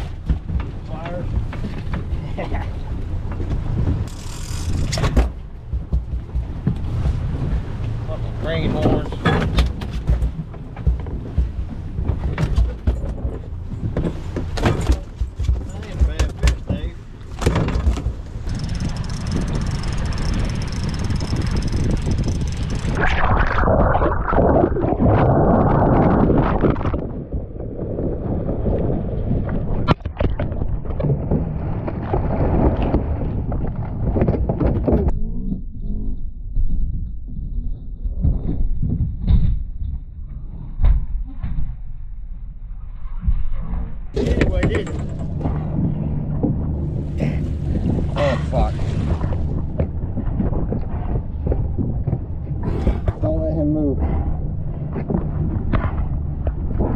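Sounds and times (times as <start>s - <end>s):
sharp knocks and thumps: 0.0s - 2.2s, 3.2s - 8.0s, 8.7s - 23.0s, 29.9s - 35.1s
sea noise: 0.0s - 5.6s, 15.8s - 34.1s, 42.8s - 56.9s
wind: 0.0s - 56.9s
rush of noise: 17.4s - 31.0s.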